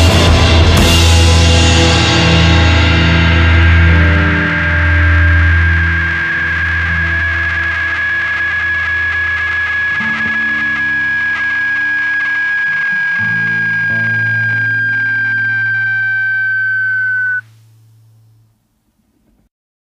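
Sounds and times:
folk rock song: 0:00.0 - 0:07.2.

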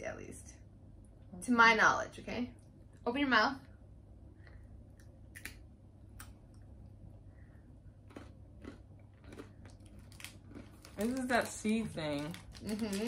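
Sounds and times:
chewing candy bar: 0:08.0 - 0:13.0.

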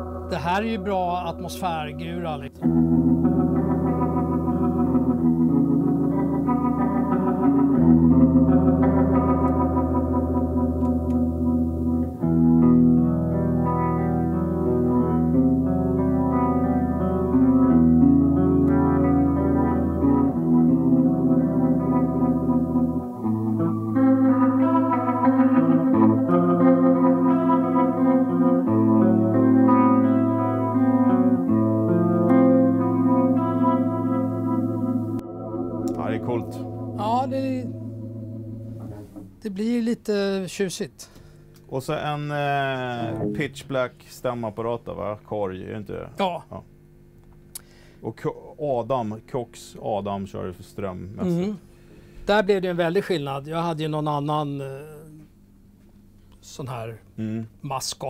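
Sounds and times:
electric guitar chords ringing: 0:00.0 - 0:39.7, 0:42.2 - 0:44.0.

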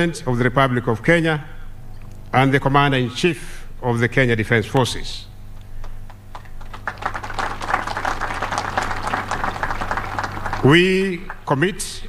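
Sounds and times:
audience applauding: 0:05.8 - 0:11.5.

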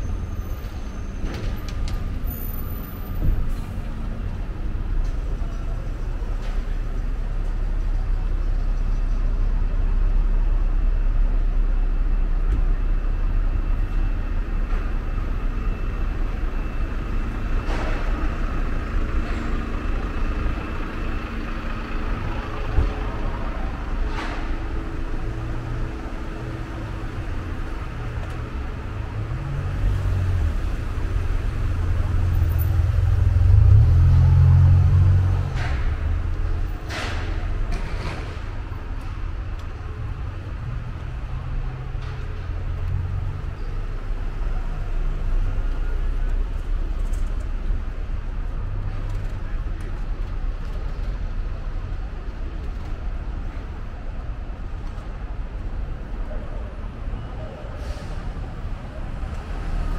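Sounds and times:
car and bus engines passing: 0:00.0 - 0:59.9.

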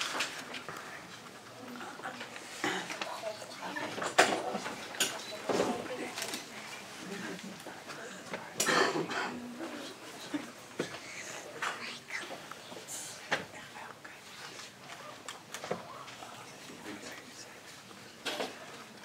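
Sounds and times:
low murmuring voices: 0:00.1 - 0:19.0.

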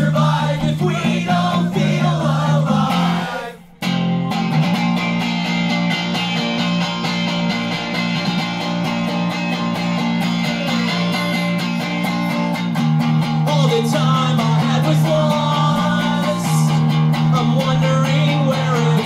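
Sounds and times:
person singing: 0:00.0 - 0:04.7, 0:09.1 - 0:12.8, 0:13.4 - 0:19.0
electric guitar through amp: 0:00.0 - 0:19.0.

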